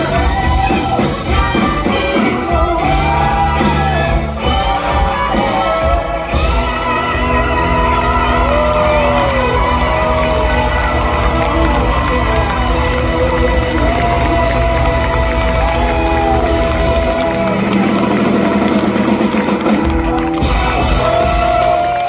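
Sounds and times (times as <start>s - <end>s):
live band playing a song: 0.0s - 22.0s.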